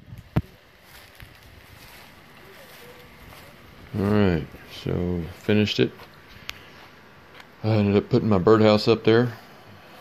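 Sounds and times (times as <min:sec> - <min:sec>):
wind buffeting microphone: 0:00.0 - 0:05.4.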